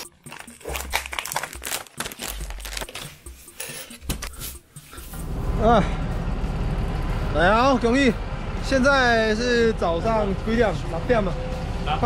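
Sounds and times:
plastic bag crinkling: 0:00.0 - 0:03.3.

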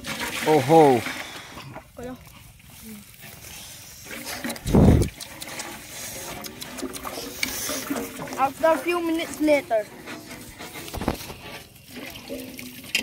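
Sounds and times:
wind buffeting microphone: 0:04.6 - 0:05.2.

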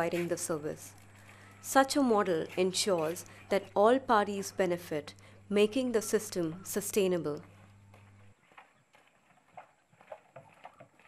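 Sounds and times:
low hum: 0:00.0 - 0:08.7
footsteps on packed earth: 0:07.4 - 0:11.0.

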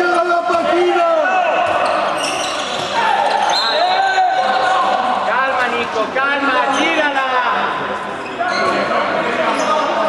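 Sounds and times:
players calling: 0:00.0 - 0:07.3
sneakers squeaking on court floor: 0:01.5 - 0:04.9.

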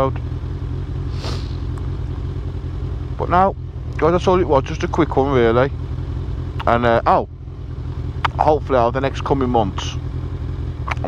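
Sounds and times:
motorcycle engine idling: 0:00.0 - 0:11.0
brief hiss: 0:01.1 - 0:01.6.

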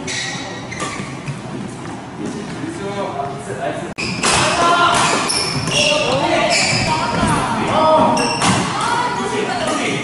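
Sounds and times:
shoes squeaking on wooden floor: 0:00.0 - 0:02.0, 0:05.0 - 0:08.6.

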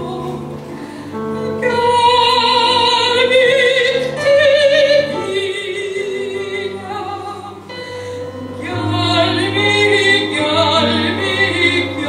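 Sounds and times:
soprano singing with vibrato: 0:00.0 - 0:00.8, 0:01.4 - 0:12.0.

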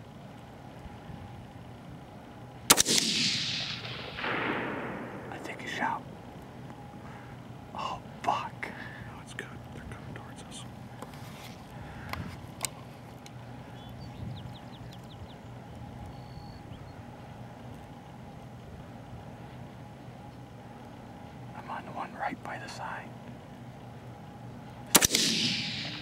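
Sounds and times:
steady low hum: 0:00.0 - 0:26.0
low voices: 0:05.3 - 0:06.1, 0:07.7 - 0:10.8.

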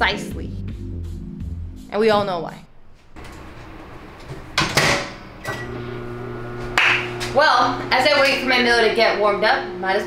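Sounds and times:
microwave oven humming: 0:03.2 - 0:10.0.

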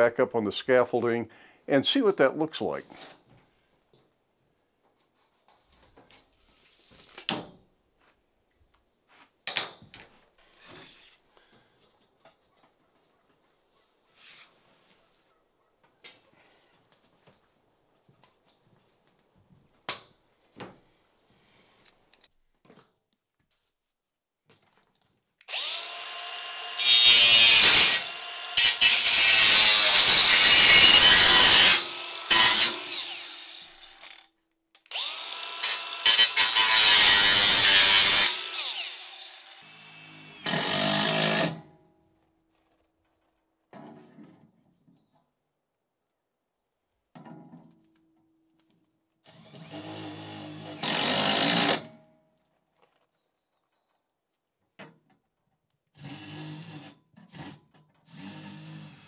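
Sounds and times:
angle grinder cutting sheet metal: 0:25.5 - 0:34.2, 0:34.9 - 0:41.6.

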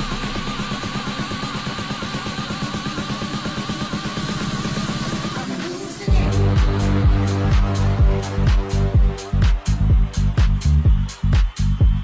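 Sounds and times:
electronic dance music: 0:00.0 - 0:12.0.

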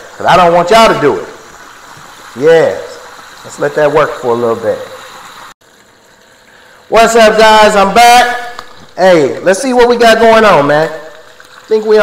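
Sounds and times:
oil bubbling and sizzling: 0:00.0 - 0:12.0
man talking: 0:00.2 - 0:01.4, 0:02.4 - 0:05.0, 0:06.9 - 0:12.0.

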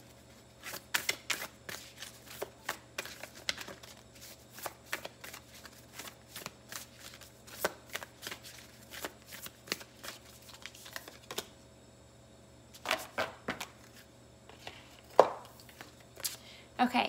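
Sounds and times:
cards being shuffled: 0:00.6 - 0:11.5, 0:12.7 - 0:16.4.

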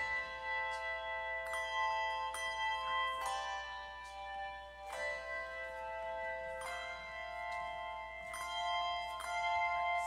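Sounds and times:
handbell choir playing hymn: 0:00.0 - 0:10.0.

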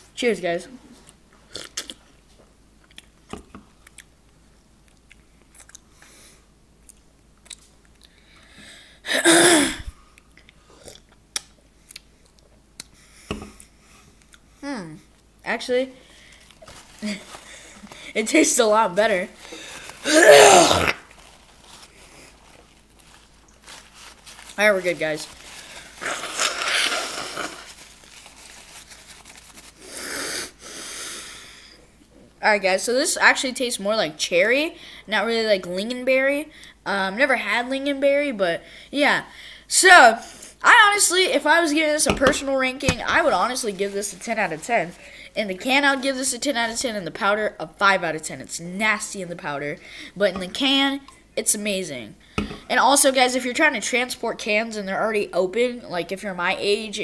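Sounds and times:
person breathing close to microphone: 0:19.4 - 0:20.1.

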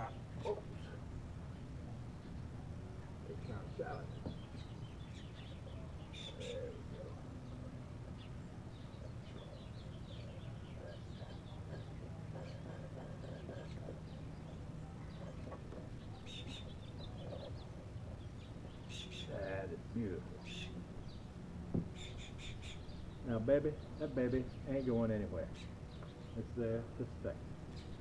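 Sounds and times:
birds chirping: 0:00.0 - 0:28.0
low background hum: 0:00.0 - 0:28.0.

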